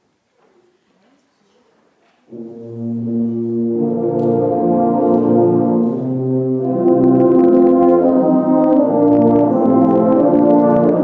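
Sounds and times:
faint room murmur: 0.0 - 6.2
brass ensemble held chord: 2.3 - 11.0.

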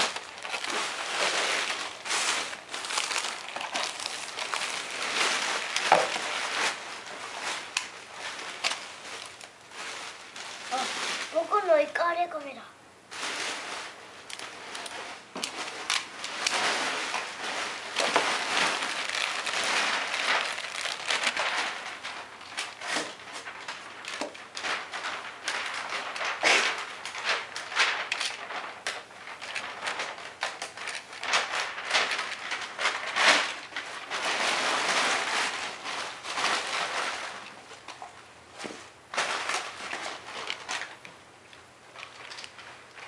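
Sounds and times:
plastic packaging crinkling: 0.0 - 12.5, 13.1 - 43.0.

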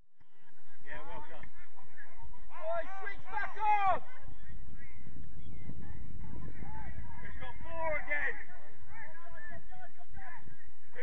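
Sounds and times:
wind buffeting microphone: 1.6 - 11.0.

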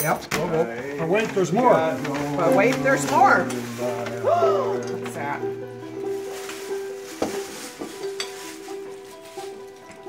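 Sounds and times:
faint background music: 0.0 - 10.0
tissue paper rustling: 1.0 - 10.0.

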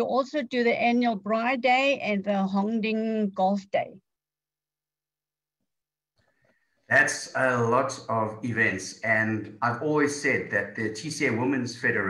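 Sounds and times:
man talking: 6.9 - 12.0.

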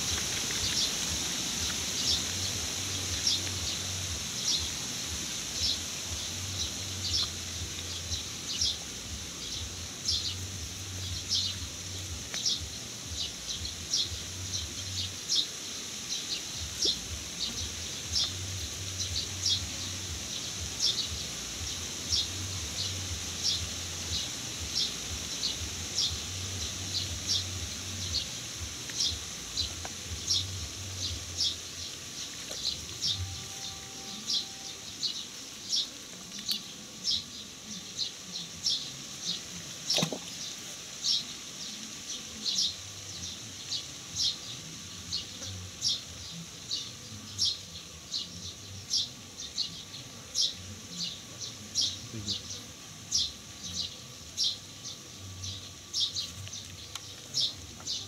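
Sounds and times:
bird high chirp: 32.7 - 35.2.

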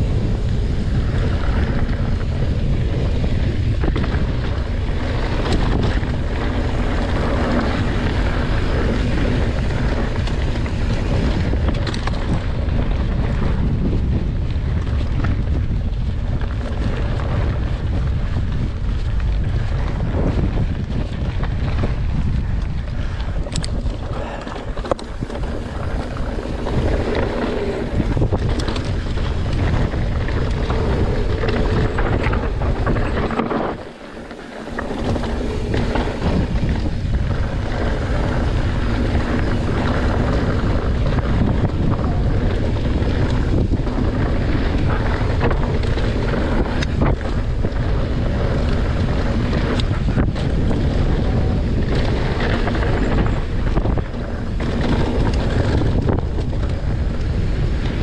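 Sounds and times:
bike rattling over ground: 0.0 - 58.0
wind rushing over microphone: 0.0 - 58.0.

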